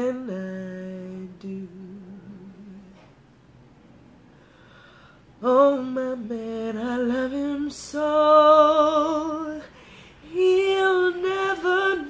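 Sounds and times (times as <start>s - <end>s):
woman singing a long note: 10.3s - 12.0s.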